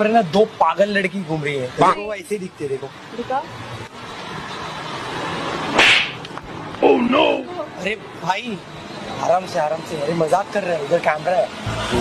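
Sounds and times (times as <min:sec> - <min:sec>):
street noise: 0:00.0 - 0:12.0
loud slap: 0:05.7 - 0:06.4.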